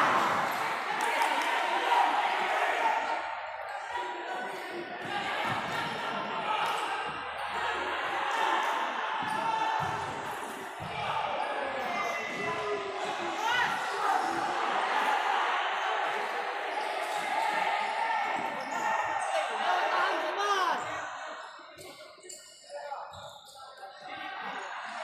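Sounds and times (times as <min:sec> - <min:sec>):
people shouting and chattering: 0:00.0 - 0:25.0.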